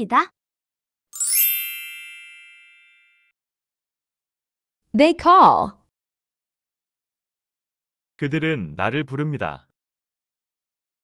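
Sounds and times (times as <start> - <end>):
bright chime ringing: 1.2 - 3.3.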